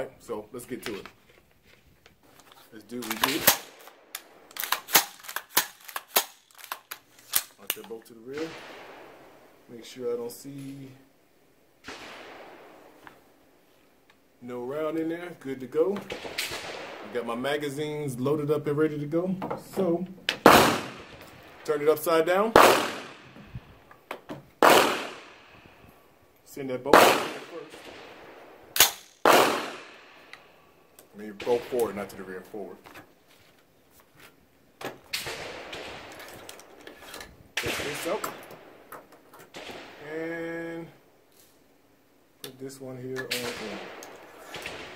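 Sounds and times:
sliding rustle: 0.7 - 7.9, 36.0 - 37.4
distant gunshot with echo: 22.6 - 23.4, 27.0 - 30.2.

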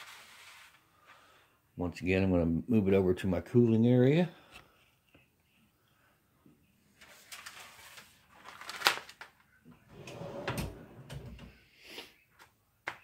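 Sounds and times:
paper rustling: 0.0 - 1.2, 6.9 - 9.6.

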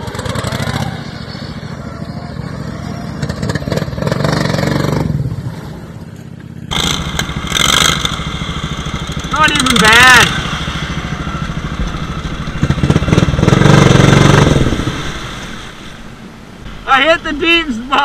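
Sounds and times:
riding mower engine running hard: 0.0 - 16.8.

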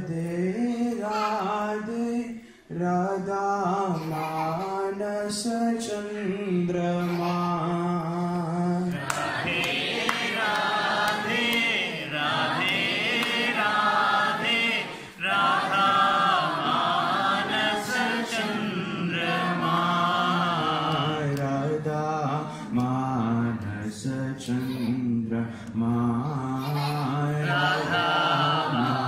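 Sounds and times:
group chanting in unison: 8.8 - 24.9, 26.1 - 29.0.

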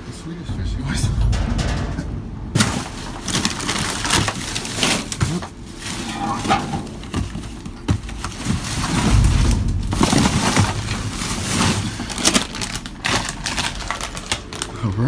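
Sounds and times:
dull low rumble: 0.0 - 15.0
plastic and cardboard rustling: 2.6 - 15.0.

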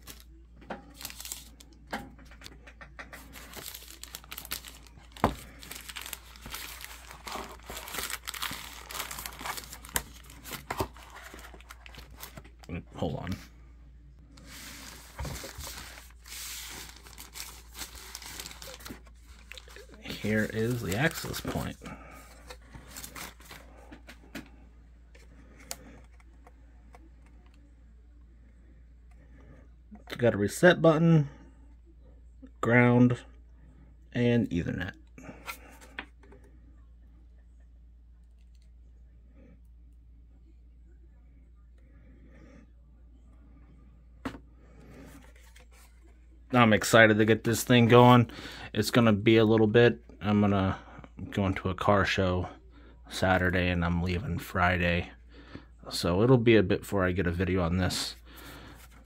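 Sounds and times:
plastic handling clicks and rustles: 0.0 - 12.7
packaging crinkling: 1.0 - 1.6, 3.2 - 12.6, 14.4 - 23.7.

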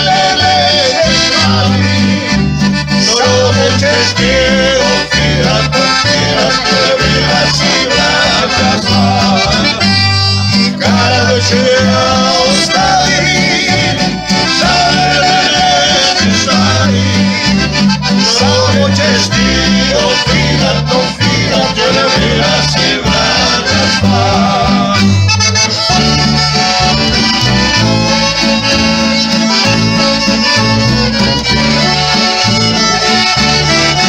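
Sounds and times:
man singing: 0.0 - 26.0
piano accordion: 0.0 - 34.0
plucked double bass: 0.0 - 34.0
strummed acoustic guitar: 0.0 - 34.0.

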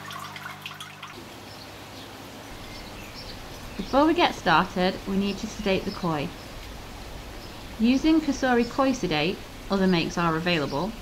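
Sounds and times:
water dripping into a tank: 0.0 - 1.4
faint outdoor background noise: 0.0 - 11.0
low electrical hum: 0.0 - 11.0.

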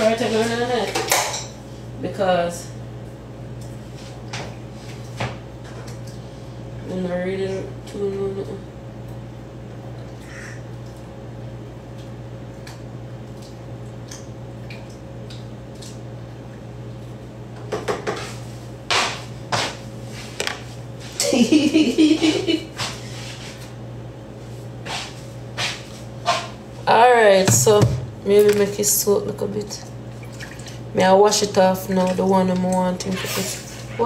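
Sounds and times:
voice: 0.0 - 1.1, 2.0 - 2.7, 6.8 - 8.6, 26.9 - 29.9, 31.0 - 34.0
steady low hum: 0.0 - 34.0.

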